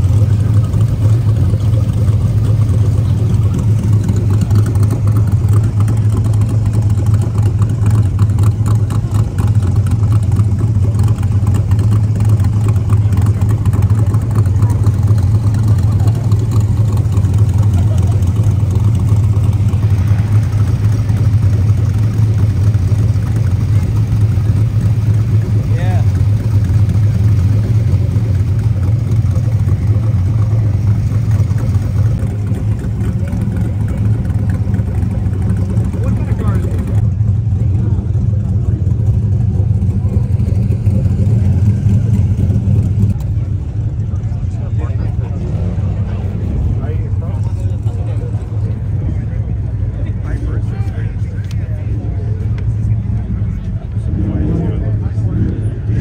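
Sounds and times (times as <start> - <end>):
car engines rumbling: 0.0 - 56.0
crowd chatter: 0.0 - 56.0.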